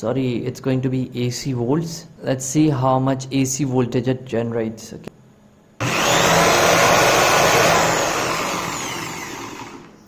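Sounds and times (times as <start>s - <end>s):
electric drill spinning motor: 5.8s - 10.0s.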